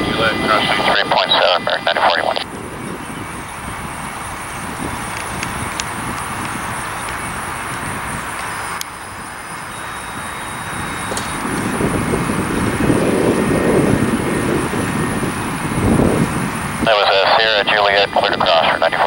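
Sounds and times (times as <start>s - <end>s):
jet engines roaring: 0.0s - 19.0s.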